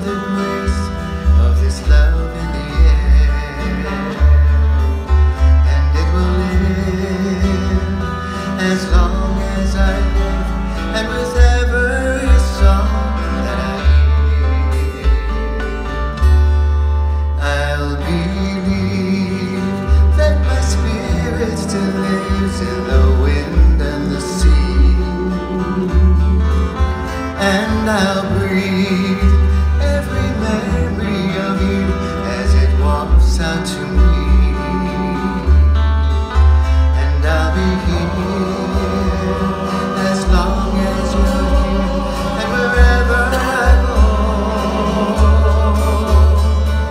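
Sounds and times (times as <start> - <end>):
men singing: 0.0 - 15.2, 17.4 - 35.9, 36.7 - 46.9
plucked acoustic string instruments: 0.0 - 46.9
upright bass: 0.0 - 46.9
person singing: 36.8 - 46.9.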